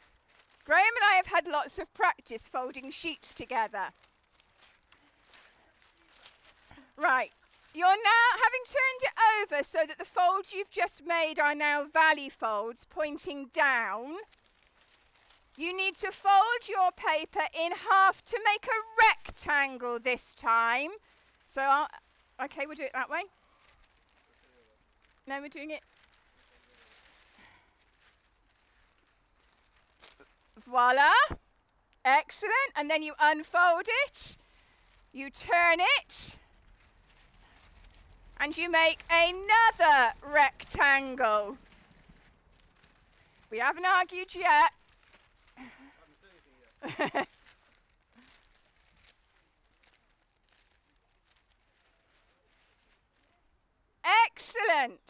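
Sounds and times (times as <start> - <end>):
soft rustle: 0.0 - 55.0
person laughing: 46.8 - 47.4.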